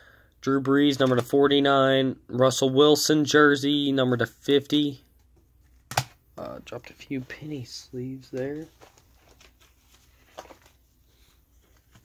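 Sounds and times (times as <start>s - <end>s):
plastic card sleeves rustling: 7.1s - 12.0s.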